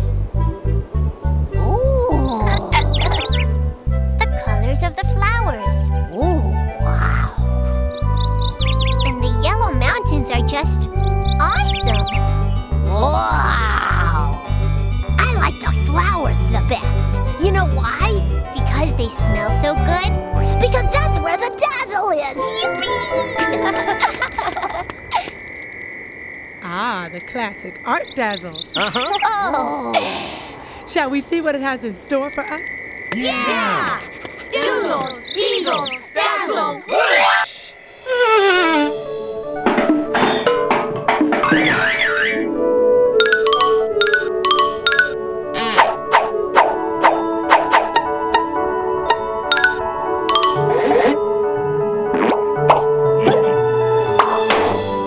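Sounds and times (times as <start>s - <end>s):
background music: 0.0s - 24.4s, 37.0s - 55.0s
magic sparkle chime tones: 22.3s - 38.2s, 49.2s - 52.0s.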